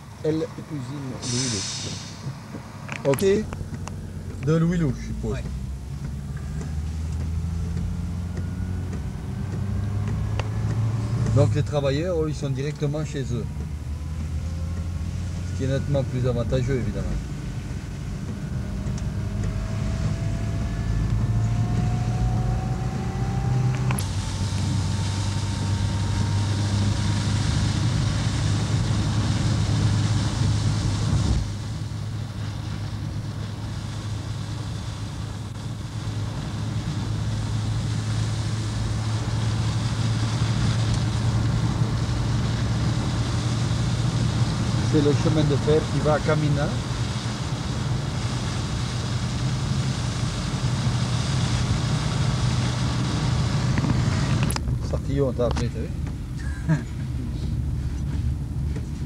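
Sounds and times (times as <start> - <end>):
car engine and tyre noise: 0.0 - 59.0
rising whine: 1.8 - 11.8, 12.5 - 54.8.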